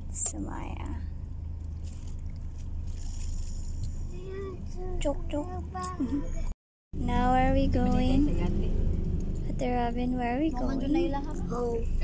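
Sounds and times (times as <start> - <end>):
person speaking: 9.5 - 11.7.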